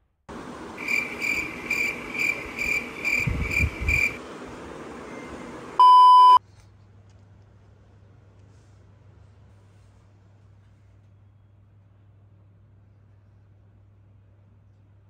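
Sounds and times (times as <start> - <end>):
hissy background: 0.3 - 6.4
loud steady bleep tone: 5.1 - 6.4
short electronic beeps: 5.8 - 6.4.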